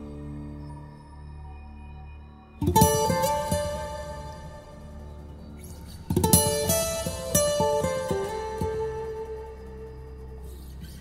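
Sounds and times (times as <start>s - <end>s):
plucked acoustic guitar melody: 2.6s - 11.0s.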